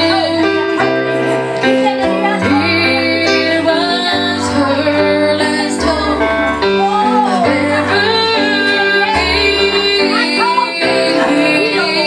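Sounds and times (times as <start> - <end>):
woman singing gospel song: 0.0 - 1.0, 1.7 - 12.0
electronic keyboard accompaniment: 0.0 - 12.0.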